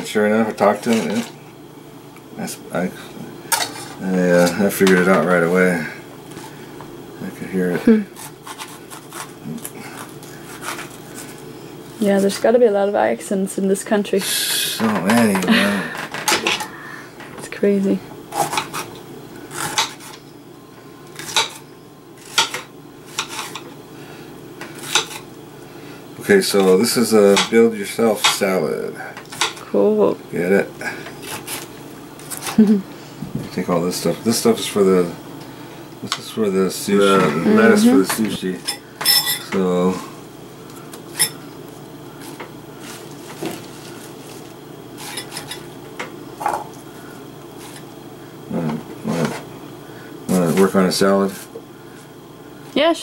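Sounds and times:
low background hum: 0.0s - 53.0s.

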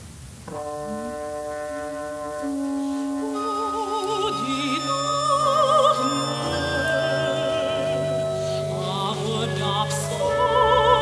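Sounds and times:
faint hiss: 0.0s - 11.0s
chamber ensemble held chord: 0.5s - 11.0s.

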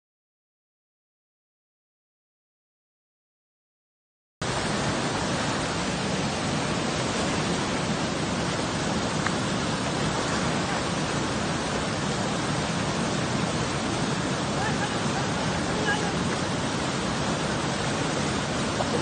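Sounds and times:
river rushing over rocks: 4.4s - 19.0s.

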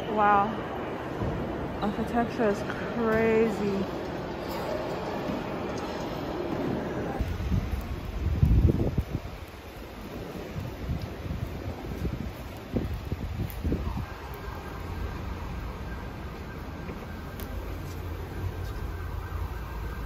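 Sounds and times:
outdoor street noise: 0.0s - 20.0s
wind buffeting microphone: 0.0s - 20.0s.

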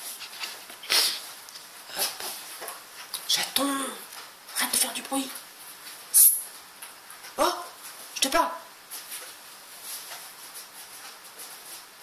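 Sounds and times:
light hiss: 0.2s - 7.0s.

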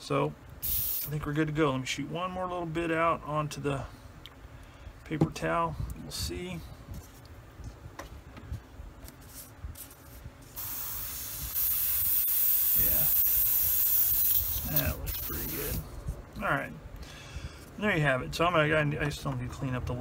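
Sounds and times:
airbrush spraying air hiss: 0.6s - 1.2s, 10.4s - 15.9s.

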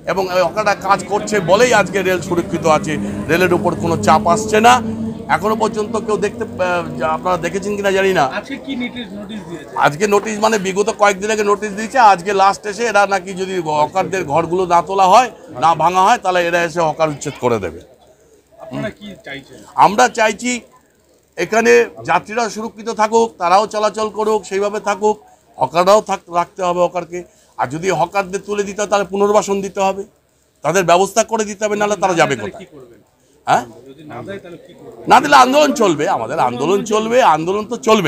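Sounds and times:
man speaking: 0.0s - 17.9s, 18.6s - 20.7s, 21.4s - 38.0s
people talking: 0.0s - 38.0s.

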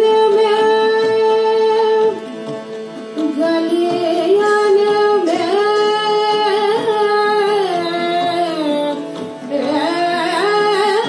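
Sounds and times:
woman singing: 0.0s - 2.2s, 3.2s - 11.0s
harmonium: 0.0s - 11.0s.

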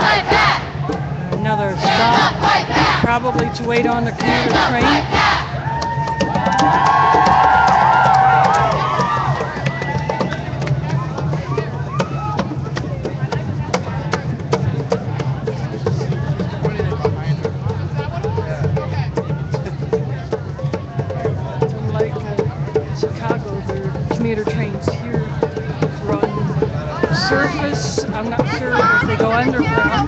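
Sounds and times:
crowd talking: 0.0s - 30.0s
drum strikes: 0.0s - 30.0s.

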